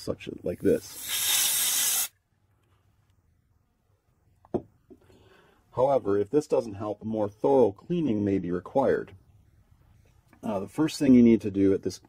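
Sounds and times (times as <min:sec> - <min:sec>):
compressed air hissing: 0:00.8 - 0:02.1.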